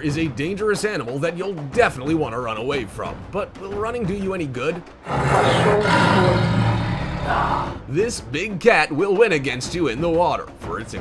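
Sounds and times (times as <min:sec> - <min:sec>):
tiger growling: 0:05.0 - 0:07.9.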